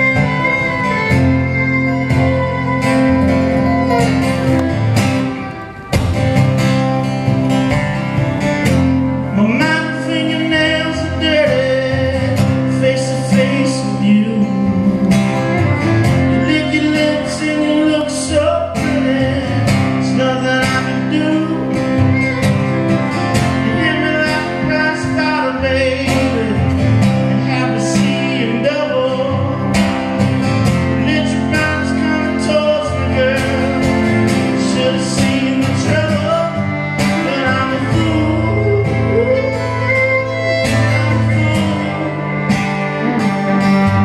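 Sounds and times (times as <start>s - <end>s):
fiddle playing: 0.0s - 44.0s
strummed acoustic guitars: 0.0s - 44.0s
man singing: 9.2s - 22.3s, 23.4s - 30.0s, 30.8s - 43.8s.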